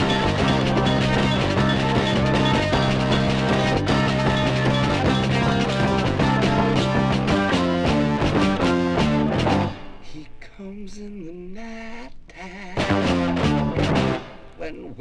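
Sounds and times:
rock band music from vinyl: 0.0 - 10.1, 12.7 - 14.6.

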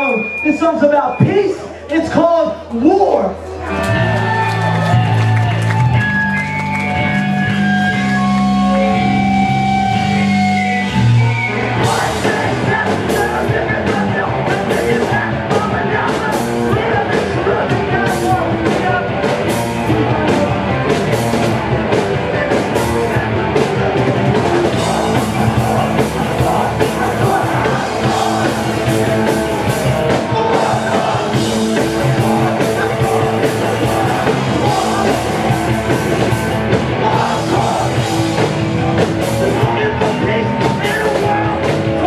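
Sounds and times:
punk band playing fast: 0.0 - 2.4, 3.6 - 42.0
guitar and bass chords: 0.0 - 42.0
drums crashing: 11.6 - 42.0
person singing: 11.8 - 19.2, 24.4 - 29.4, 30.1 - 42.0.

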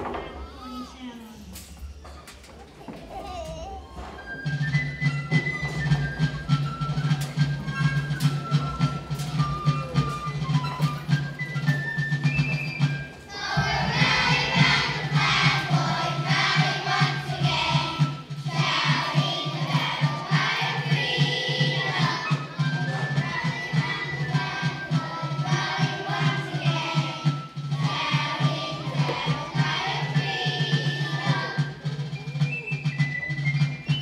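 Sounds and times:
instrumental accompaniment: 1.5 - 34.0
children's choir singing: 4.0 - 33.4.

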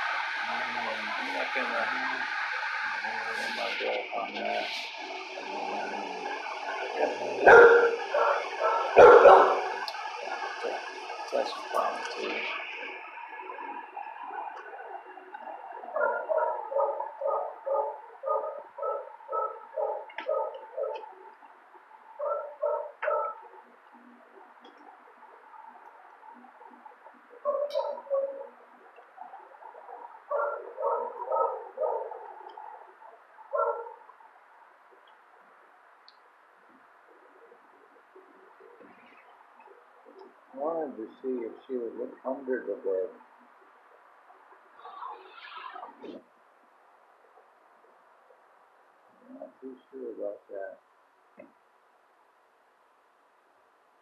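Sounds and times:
dog barking: 7.4 - 9.8, 15.9 - 21.1, 22.2 - 23.5, 27.4 - 28.6, 29.2 - 32.9, 33.5 - 34.1.

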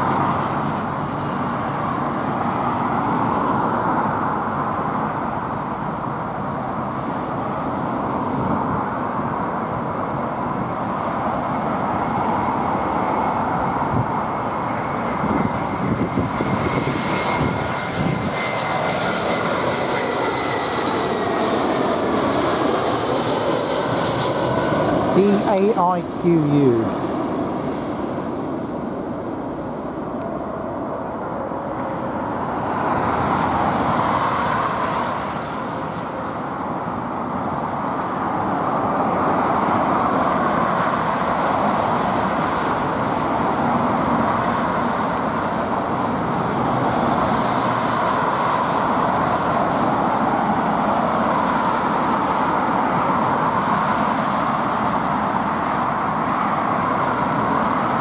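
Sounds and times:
jet plane landing: 0.0 - 58.0
road traffic roar: 0.0 - 58.0.

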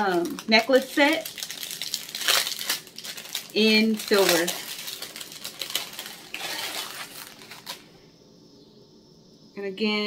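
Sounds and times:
plastic packaging rustling: 0.0 - 8.0.

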